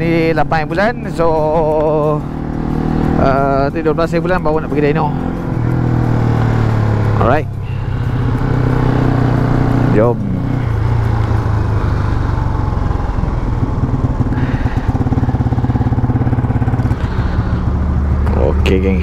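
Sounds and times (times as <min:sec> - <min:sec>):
moped engine running: 0:00.0 - 0:19.0
wind and road noise: 0:00.0 - 0:19.0.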